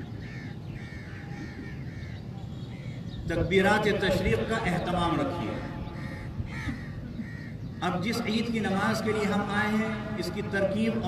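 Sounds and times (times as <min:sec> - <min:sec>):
crows cawing: 0:00.0 - 0:03.2, 0:05.4 - 0:07.9.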